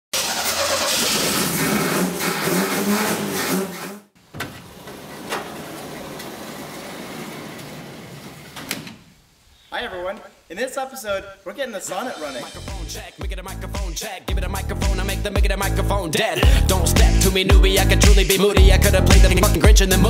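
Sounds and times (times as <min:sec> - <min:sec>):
sliding barn door rolling: 0:00.5 - 0:09.2.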